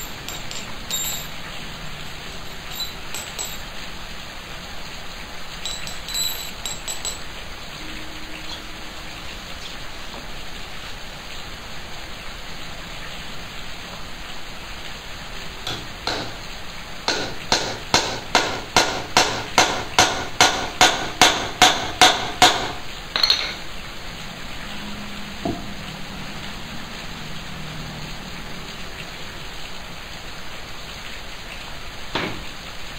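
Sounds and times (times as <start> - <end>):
steady hiss: 0.0 - 32.9.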